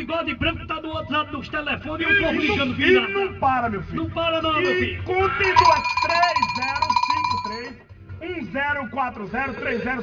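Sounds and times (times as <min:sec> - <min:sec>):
electronic telephone ringing: 0:05.4 - 0:07.7.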